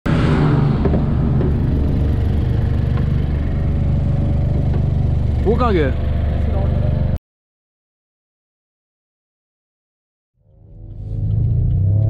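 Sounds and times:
car engine idling: 0.1s - 7.2s.

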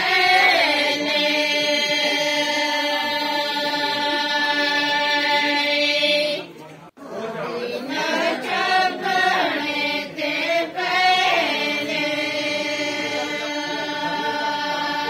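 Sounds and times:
women singing devotional song: 0.0s - 15.0s.

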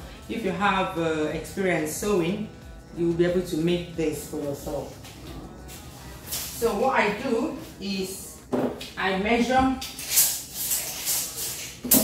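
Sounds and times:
tape measure blade hissing out: 9.9s - 12.0s.

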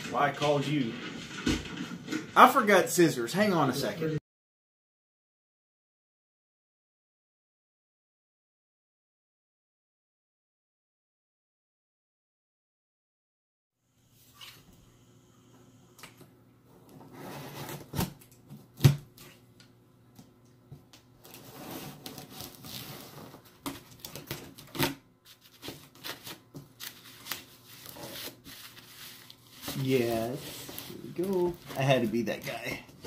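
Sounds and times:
person speaking: 2.4s - 4.2s, 29.6s - 33.0s.

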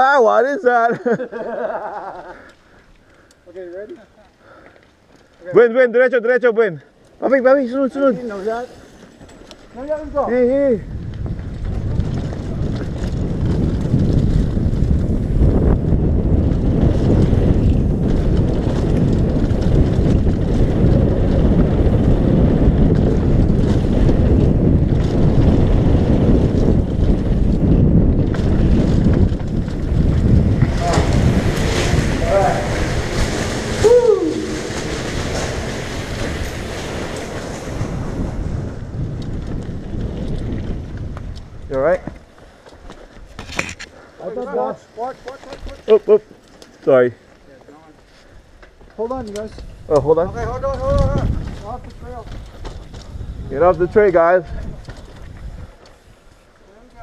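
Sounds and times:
mountain bike rattling: 0.0s - 57.0s
wind buffeting camera: 2.5s - 57.0s
person shouting: 33.8s - 34.8s
voices: 44.1s - 48.0s.

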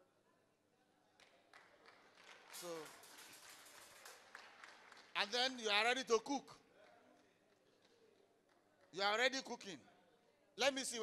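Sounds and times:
faint audience applause: 1.2s - 9.3s.

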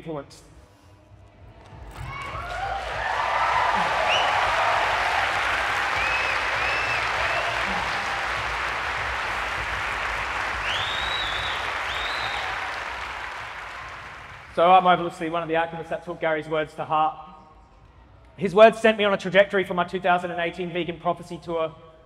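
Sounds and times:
large audience applauding: 1.5s - 14.6s
crowd cheering: 1.5s - 14.8s.

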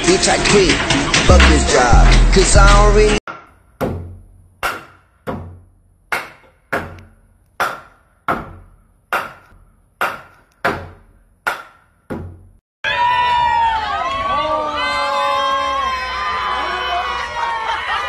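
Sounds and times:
hammer knocking on wood: 3.3s - 5.6s, 6.2s - 12.5s.

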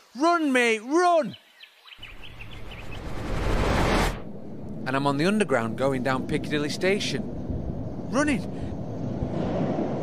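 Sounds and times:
low hum: 2.1s - 10.0s
rushing whoosh: 2.1s - 10.0s.

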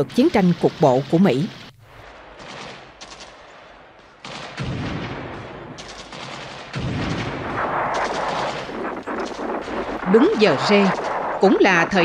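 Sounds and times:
gunshots and automatic fire: 1.5s - 12.0s
heavy deep blasts: 1.5s - 12.0s.

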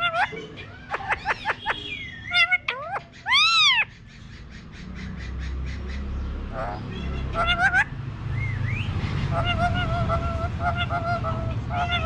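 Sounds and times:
parakeet squawking and screeching: 0.0s - 12.0s.

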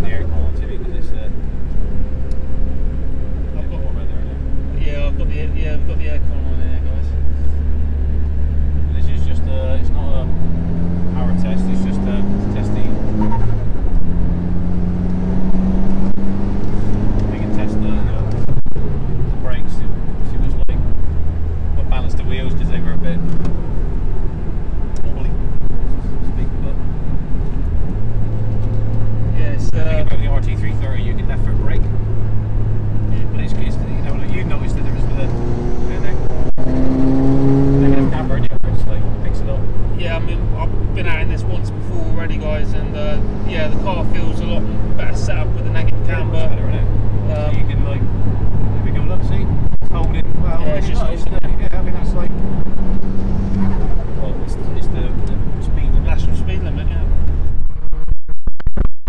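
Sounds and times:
car engine accelerating through gears: 0.0s - 58.0s.

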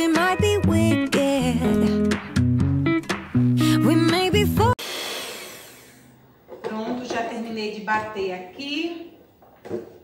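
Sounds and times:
background music: 0.0s - 4.8s.

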